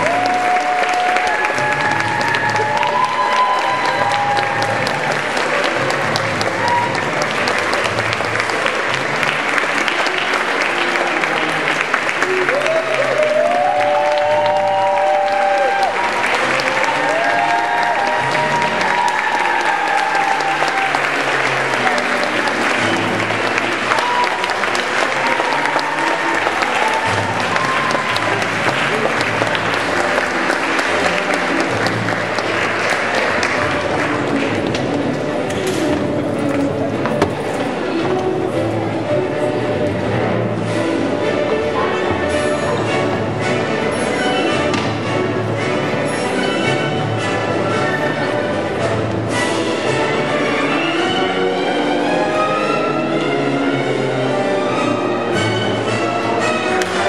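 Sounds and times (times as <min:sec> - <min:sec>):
audience applauding: 0:00.0 - 0:38.6
music playing: 0:00.0 - 0:57.0.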